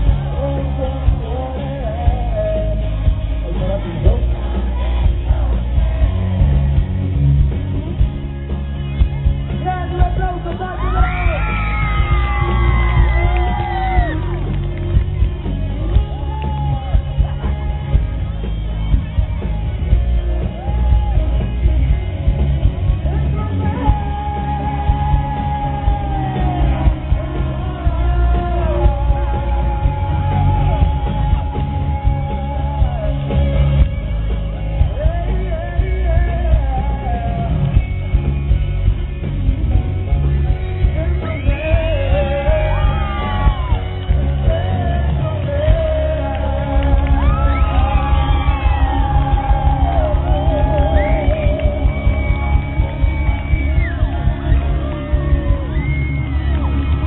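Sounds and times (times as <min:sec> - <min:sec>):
man singing: 0:00.0 - 0:06.8, 0:09.5 - 0:14.6, 0:22.8 - 0:34.2, 0:34.8 - 0:38.2, 0:39.6 - 0:57.0
electric guitar: 0:00.0 - 0:57.0
live pop-rock band playing: 0:00.0 - 0:57.0.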